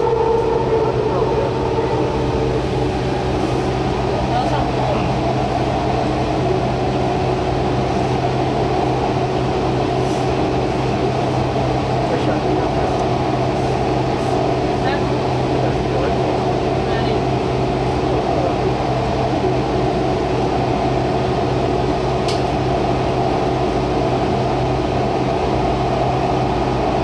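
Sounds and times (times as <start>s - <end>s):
low hum: 0.0s - 14.8s
train running on track: 0.0s - 27.0s.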